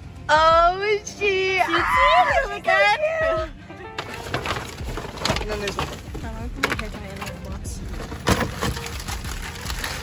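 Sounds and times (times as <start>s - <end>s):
paper wrapping tearing: 8.0s - 10.0s.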